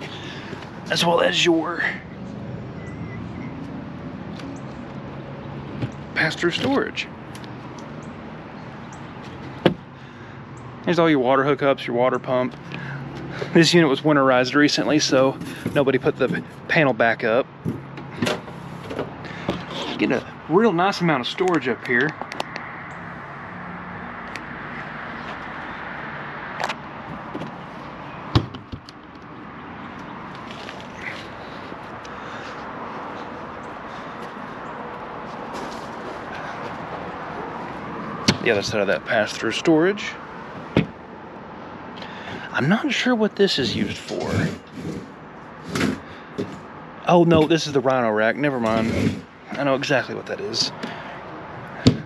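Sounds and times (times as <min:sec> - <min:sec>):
low outdoor background hum: 0:26.8 - 0:52.0.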